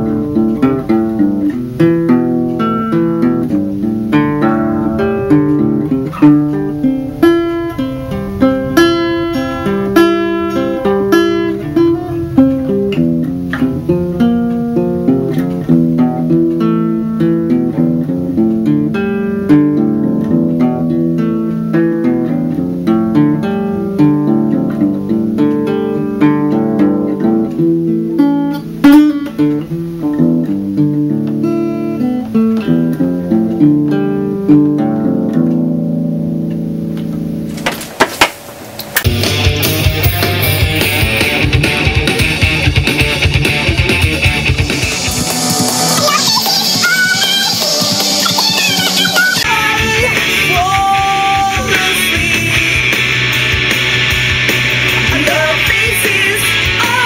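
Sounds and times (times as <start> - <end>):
strummed guitar chords: 0.0 - 38.0, 38.8 - 57.0
acoustic guitar picked notes: 0.0 - 57.0.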